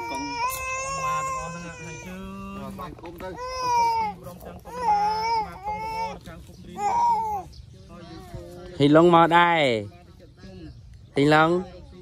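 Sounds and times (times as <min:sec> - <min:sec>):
young child wailing: 0:00.0 - 0:02.2.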